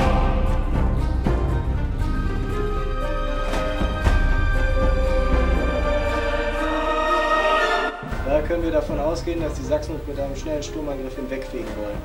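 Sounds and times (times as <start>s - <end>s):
sustained choral chords: 0.0s - 9.4s.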